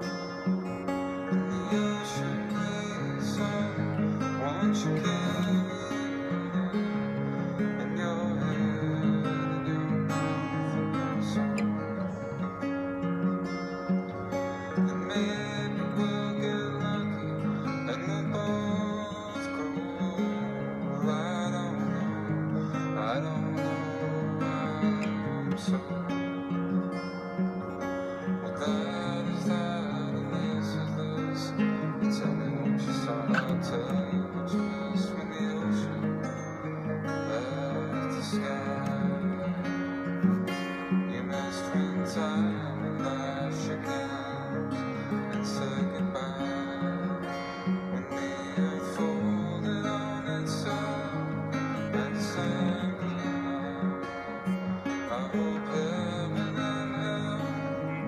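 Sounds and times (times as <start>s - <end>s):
acoustic guitar strumming: 0.0s - 58.0s
recorded song playing: 0.0s - 58.0s.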